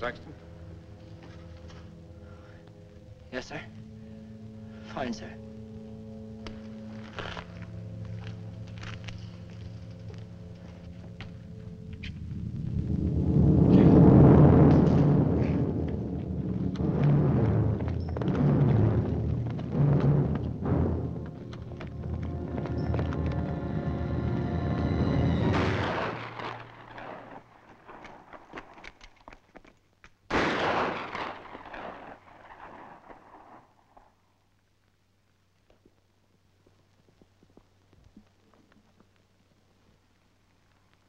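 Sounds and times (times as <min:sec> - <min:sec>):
dramatic orchestral score: 0:00.0 - 0:28.2
heavy low drum hits: 0:13.4 - 0:23.6
rifle shot: 0:25.5 - 0:28.8, 0:30.3 - 0:33.7.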